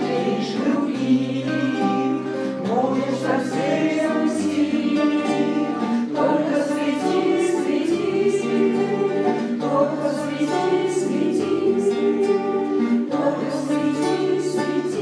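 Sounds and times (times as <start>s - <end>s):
acoustic guitars strumming: 0.0s - 15.0s
group of voices singing: 0.0s - 15.0s.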